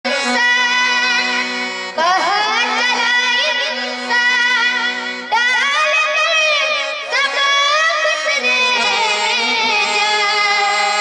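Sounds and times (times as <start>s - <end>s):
harmonium chords: 0.0s - 11.0s
boy singing: 0.1s - 11.0s.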